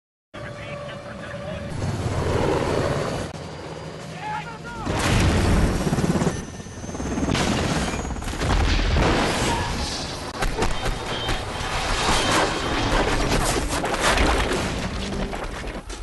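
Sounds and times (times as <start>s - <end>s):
helicopter rotor noise: 0.4s - 8.4s.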